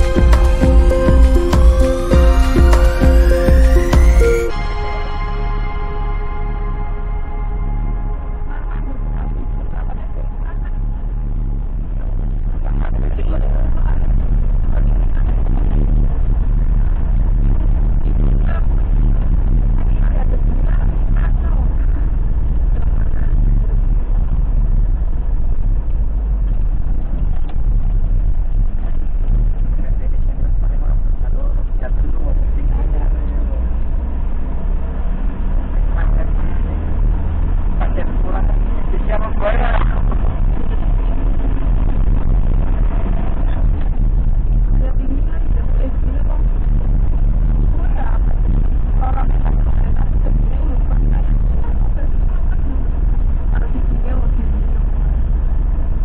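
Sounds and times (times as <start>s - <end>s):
brief high-pitched sound: 0.0s - 11.7s
vehicle engine and tyres rumbling: 6.2s - 56.0s.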